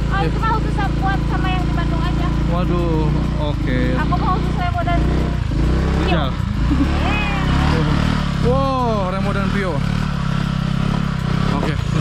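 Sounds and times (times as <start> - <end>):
people talking: 0.0 - 5.2, 6.0 - 9.8, 11.5 - 11.9
small motorcycle engine running: 0.0 - 12.0.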